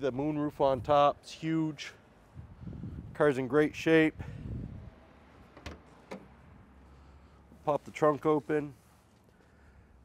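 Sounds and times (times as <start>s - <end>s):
car trunk latch clicks: 5.5s - 6.4s.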